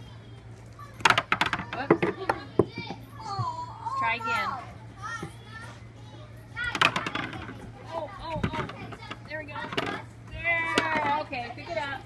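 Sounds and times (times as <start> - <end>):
children calling out and chattering: 0.0 - 12.0.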